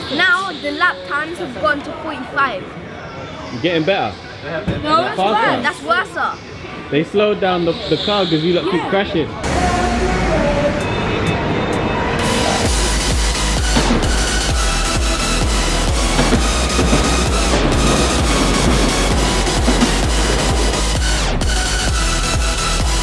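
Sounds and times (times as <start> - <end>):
electronic dance music: 12.2 - 23.0
heavy bass beat: 12.2 - 23.0.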